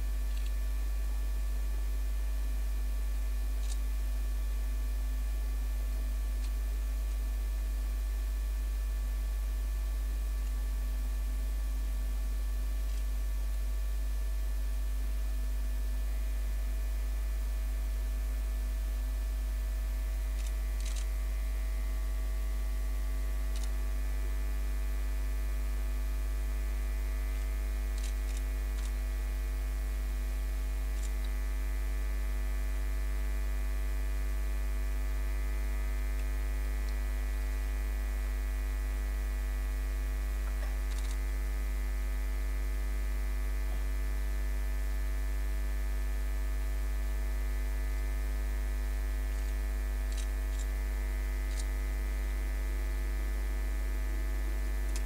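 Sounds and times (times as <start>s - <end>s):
electrical mains hum: 0.0s - 55.0s.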